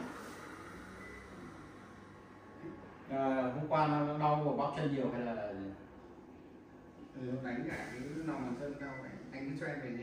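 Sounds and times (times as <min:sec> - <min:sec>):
massage chair mechanical whirring: 0:00.0 - 0:06.2.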